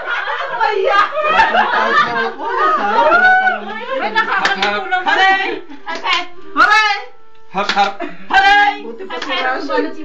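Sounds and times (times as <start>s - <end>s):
people talking and calling out: 0.5s - 10.0s
sharp hand clap: 4.4s - 4.8s, 7.6s - 8.0s.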